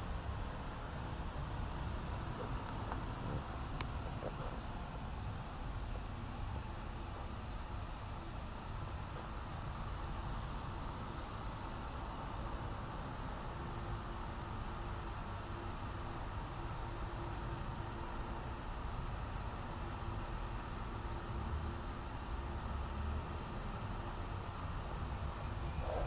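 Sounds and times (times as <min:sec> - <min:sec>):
faint constant tone: 0:00.0 - 0:26.0
mechanical hum and hiss: 0:00.0 - 0:26.0.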